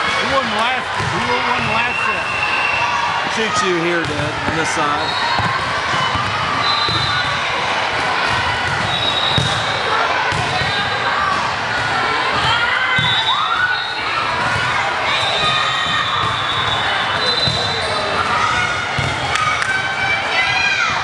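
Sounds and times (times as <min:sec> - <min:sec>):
balls thudding on hardwood court: 0:00.2 - 0:01.9, 0:03.2 - 0:11.5, 0:18.5 - 0:19.8.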